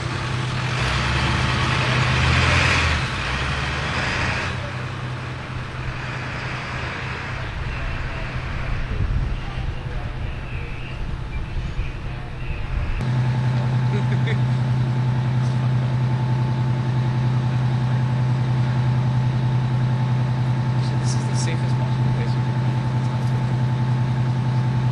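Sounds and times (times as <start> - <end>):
faint street noise: 0.0 - 24.9
vehicle engine idling: 0.0 - 24.9.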